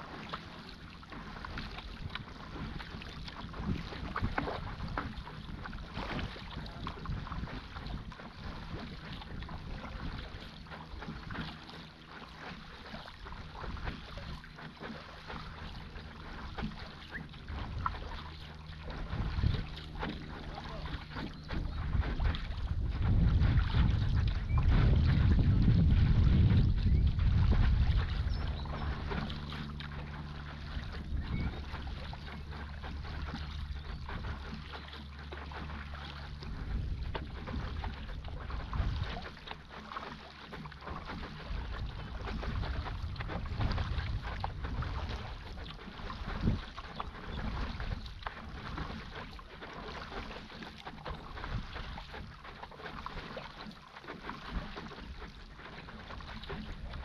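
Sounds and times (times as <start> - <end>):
water splashing and lapping: 0.0 - 57.0
wind buffeting microphone: 1.8 - 11.5, 15.4 - 34.9, 35.5 - 39.5, 40.9 - 49.0.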